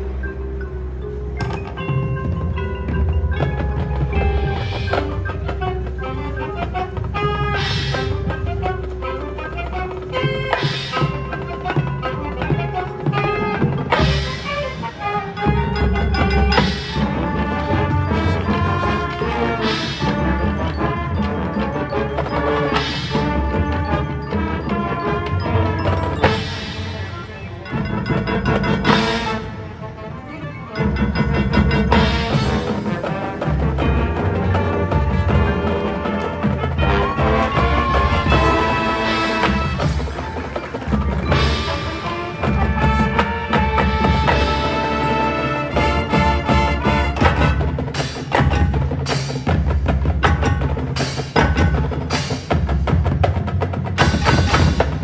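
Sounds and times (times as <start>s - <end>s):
marching band playing: 0.0s - 55.0s
marimba: 0.0s - 55.0s.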